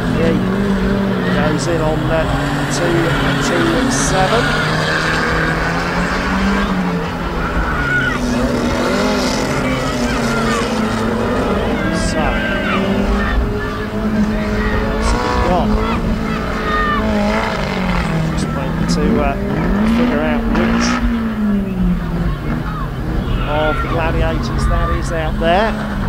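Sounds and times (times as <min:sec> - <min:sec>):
car engines revving hard: 0:00.0 - 0:26.0.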